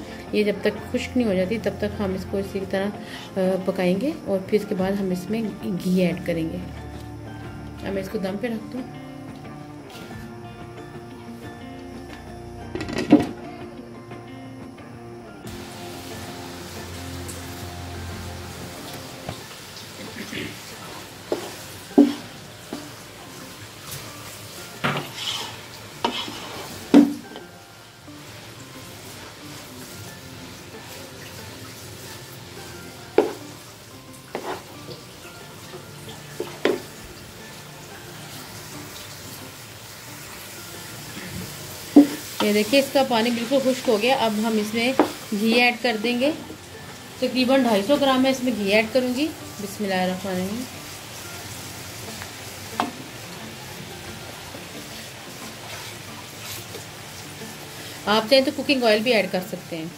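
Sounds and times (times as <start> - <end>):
low sizzle: 0.0 - 59.9
wooden spoon stirring in metal pot: 20.1 - 23.1, 24.8 - 27.4, 34.3 - 35.0, 54.3 - 58.5.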